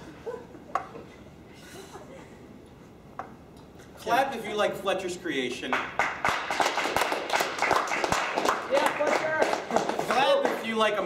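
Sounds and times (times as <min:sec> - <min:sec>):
audience clapping: 0:05.6 - 0:11.0.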